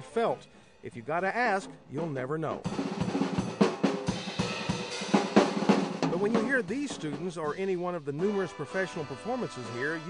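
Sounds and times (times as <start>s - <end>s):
snare and drum strokes: 1.5s - 10.0s.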